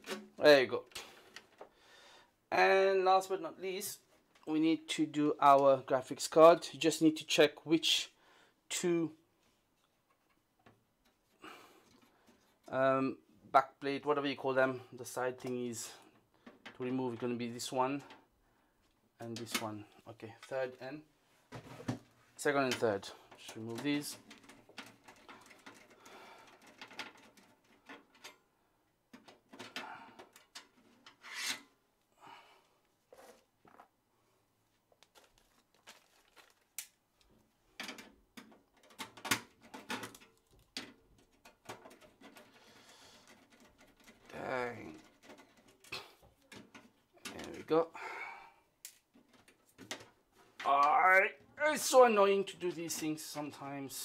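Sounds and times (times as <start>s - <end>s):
metal scraping on metal: 31.0s - 31.7s.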